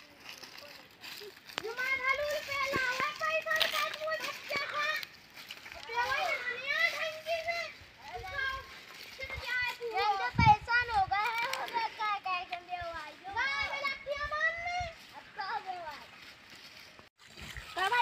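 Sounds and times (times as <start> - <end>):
children calling and chattering: 0.0 - 18.0.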